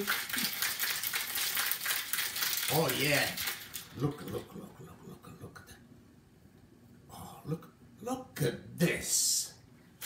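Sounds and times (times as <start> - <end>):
ice rattling in cocktail shaker: 0.0 - 4.5.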